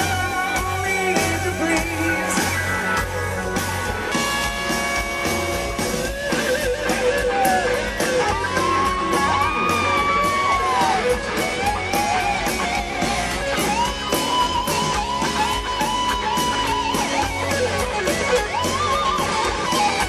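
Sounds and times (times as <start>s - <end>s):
lead electric guitar with bends: 0.0s - 20.0s
rock band playing: 0.0s - 20.0s.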